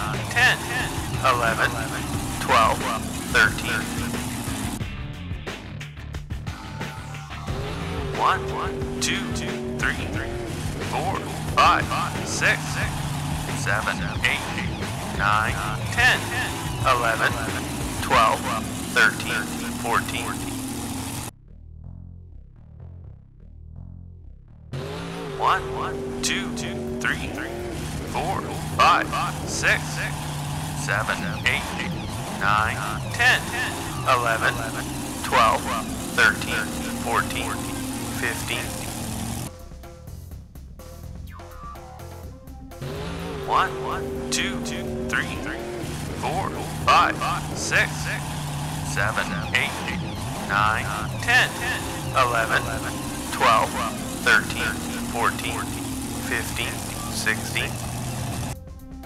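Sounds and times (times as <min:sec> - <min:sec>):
cartoon truck engine revving: 0:00.0 - 0:04.9, 0:06.5 - 0:21.3, 0:24.7 - 0:39.6, 0:41.3 - 0:58.6.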